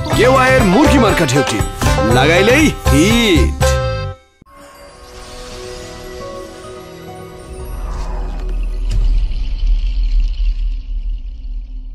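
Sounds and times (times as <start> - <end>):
high shimmer: 4.5 - 8.9.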